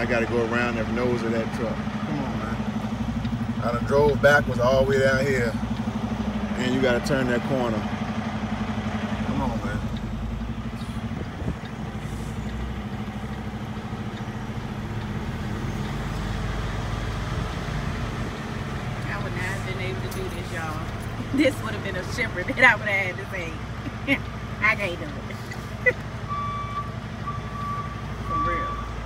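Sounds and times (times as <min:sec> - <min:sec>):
diesel truck engine running: 0:00.0 - 0:29.0.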